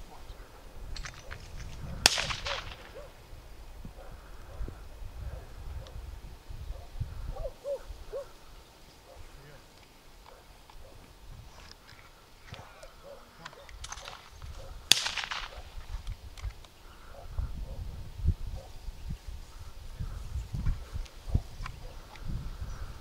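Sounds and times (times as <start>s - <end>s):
wind rumble on microphone: 0.0s - 8.5s, 10.4s - 11.8s, 13.6s - 23.0s
distant shotgun shot: 2.0s - 3.2s, 13.8s - 15.8s.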